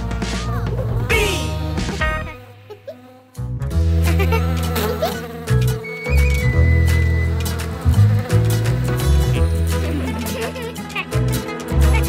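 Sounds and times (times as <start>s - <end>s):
cartoon bee buzzing: 0.0s - 12.0s.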